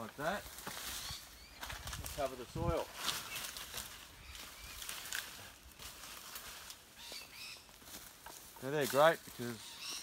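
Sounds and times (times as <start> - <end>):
rustling banana leaves: 0.0 - 9.8.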